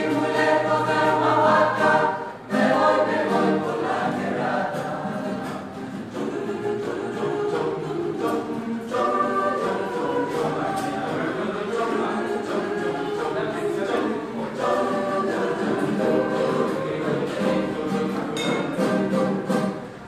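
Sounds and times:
choir breaths: 0.0 - 18.2
mixed choir singing: 0.0 - 20.0.

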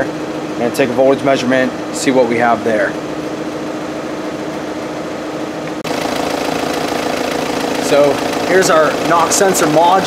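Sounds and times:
diesel engine idling: 5.8 - 10.0.

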